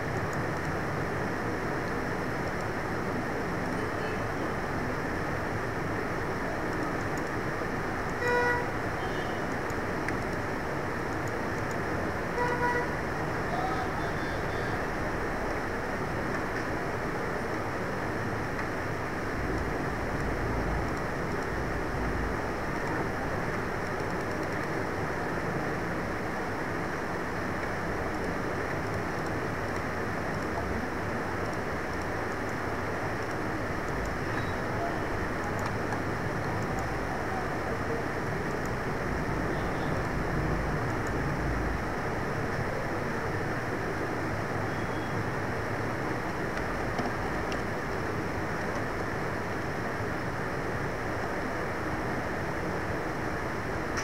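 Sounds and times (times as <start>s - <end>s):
steady background hiss: 0.0s - 54.0s.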